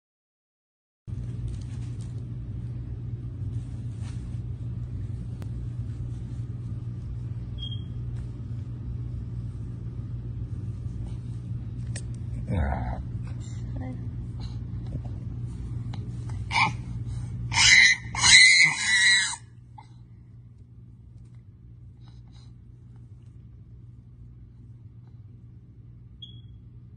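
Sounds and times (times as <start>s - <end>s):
steady low hum: 1.1s - 26.9s.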